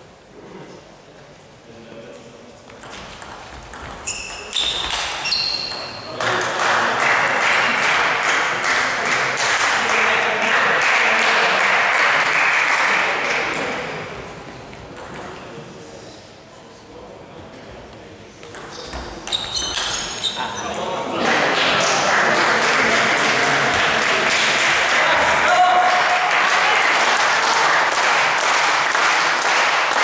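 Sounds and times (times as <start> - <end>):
shoe squeaks: 4.0 - 6.1, 18.7 - 20.9
spectators clapping: 6.2 - 13.6, 21.2 - 30.0.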